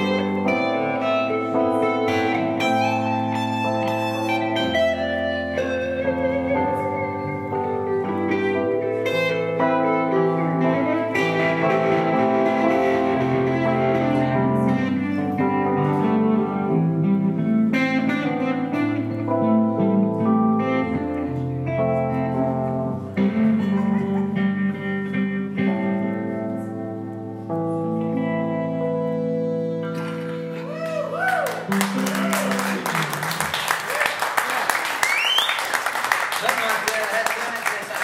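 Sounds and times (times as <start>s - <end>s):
bass notes: 0.0s - 33.7s
country band playing: 0.0s - 36.9s
guitar: 0.0s - 37.0s.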